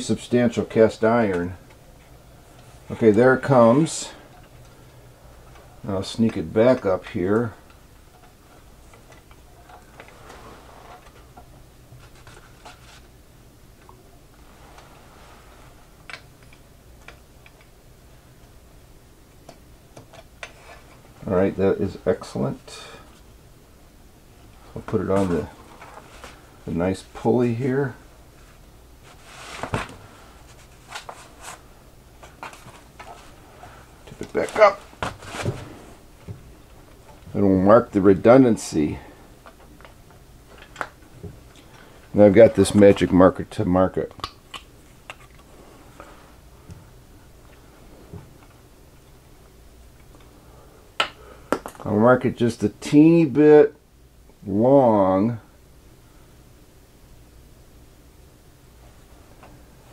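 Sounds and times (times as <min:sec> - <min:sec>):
steady low hum: 0:00.0 - 0:59.9
handling rustles: 0:24.5 - 0:37.4
small clicks and rustling: 0:44.1 - 0:46.8.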